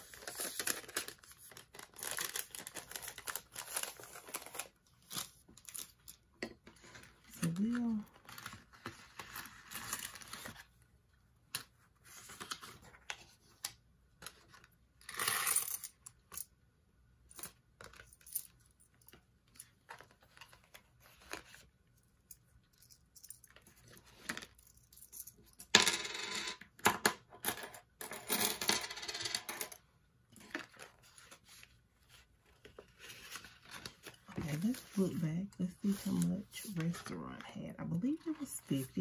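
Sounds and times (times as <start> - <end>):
coins clattering on tabletop: 15.0 - 16.5, 24.2 - 29.8
paper banknotes rustling: 30.6 - 37.2.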